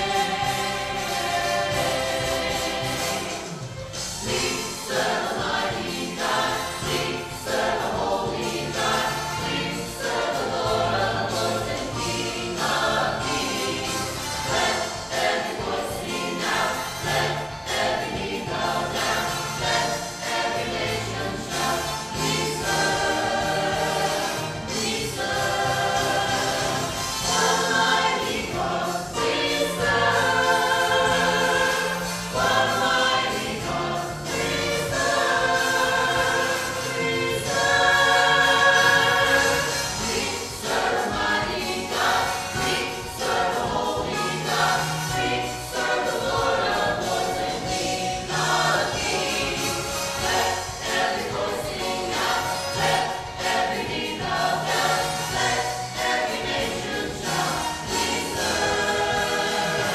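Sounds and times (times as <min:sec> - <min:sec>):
choir singing gospel: 0:00.0 - 0:59.9.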